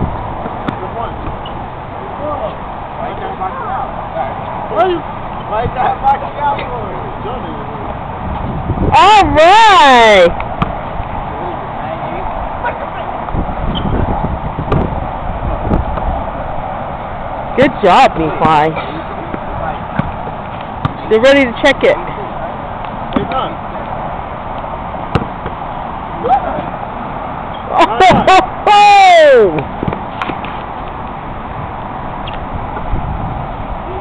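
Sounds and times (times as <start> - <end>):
low outdoor background: 0.0 - 34.0
basketball bouncing on hard surface: 0.4 - 1.4, 19.3 - 21.1, 25.1 - 25.6
loud shout: 8.9 - 10.3, 27.7 - 29.6.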